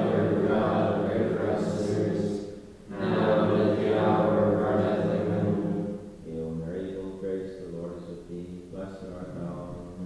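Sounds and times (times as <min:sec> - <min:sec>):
congregation praying in unison: 0:00.0 - 0:10.0.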